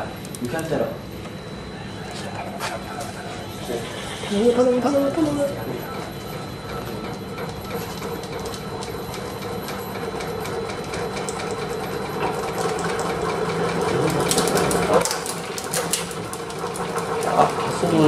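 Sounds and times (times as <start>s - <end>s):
shaking table mechanical hum: 0.0s - 18.0s.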